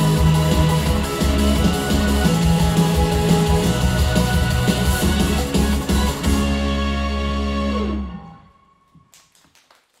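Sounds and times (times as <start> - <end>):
pop backing track: 0.0 - 8.3
audience handclaps: 9.0 - 10.0.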